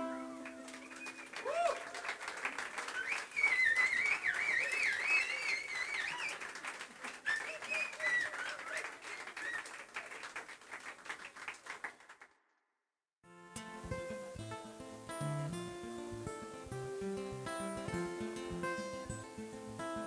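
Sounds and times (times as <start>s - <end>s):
audience clapping: 0.2s - 12.4s
whistles swooping: 0.7s - 1.8s, 2.9s - 6.5s, 7.2s - 9.7s.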